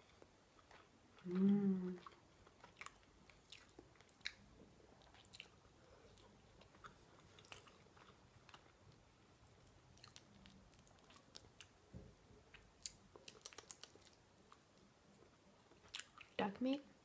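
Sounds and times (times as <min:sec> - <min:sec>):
chewing: 0:00.0 - 0:09.0, 0:09.6 - 0:11.8, 0:12.5 - 0:16.4.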